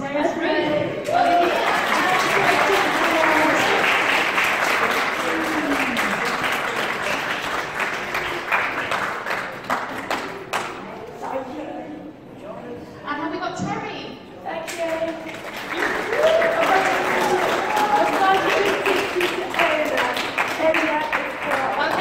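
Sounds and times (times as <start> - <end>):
small crowd applauding: 1.0 - 11.0, 14.7 - 22.0.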